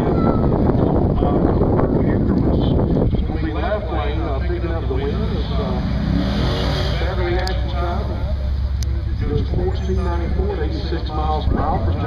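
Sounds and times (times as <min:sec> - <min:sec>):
cars idling rumble: 0:00.0 - 0:12.0
voices talking: 0:00.0 - 0:12.0.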